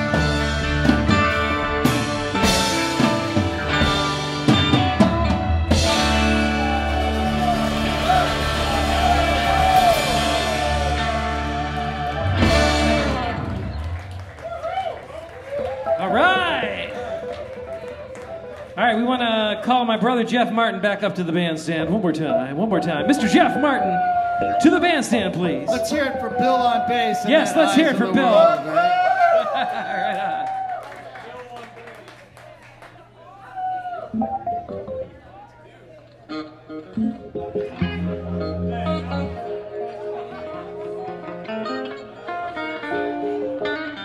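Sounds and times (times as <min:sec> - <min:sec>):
electric guitar notes ringing: 0:00.0 - 0:14.3, 0:36.3 - 0:44.0
man speaking into a microphone: 0:18.8 - 0:28.8.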